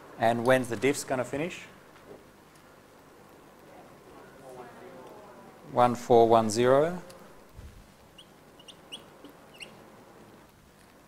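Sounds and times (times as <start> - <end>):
high-pitched chirps: 8.2 - 9.8.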